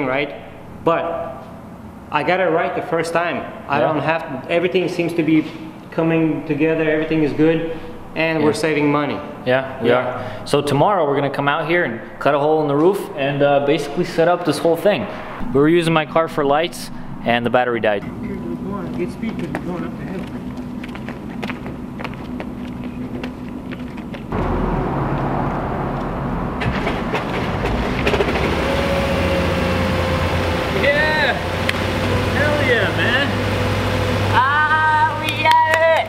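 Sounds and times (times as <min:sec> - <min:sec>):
car engine idling: 0:04.9 - 0:09.5, 0:11.2 - 0:36.0
men calling out: 0:34.3 - 0:36.0.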